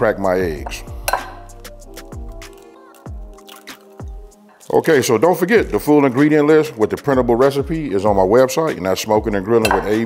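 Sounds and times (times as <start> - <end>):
background music: 0.0 - 10.0
eggshell tapping on glass bowl: 0.6 - 1.5, 9.6 - 10.0.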